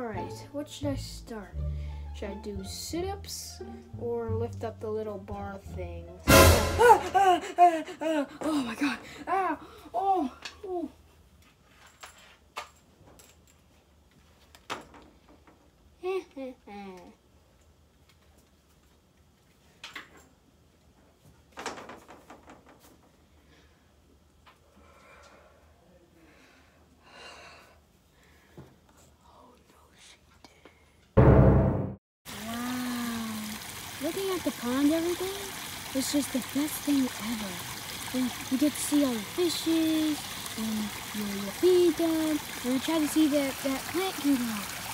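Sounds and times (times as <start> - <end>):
water trickling: 32.3 - 44.9.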